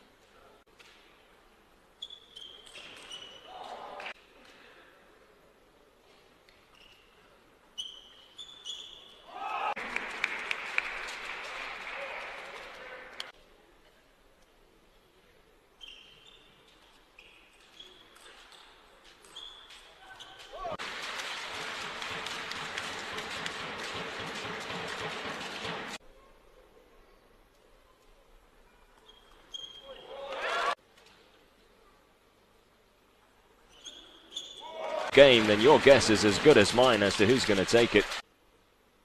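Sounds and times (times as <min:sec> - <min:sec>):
crowd cheering and applauding: 0:09.7 - 0:12.8, 0:34.9 - 0:38.2.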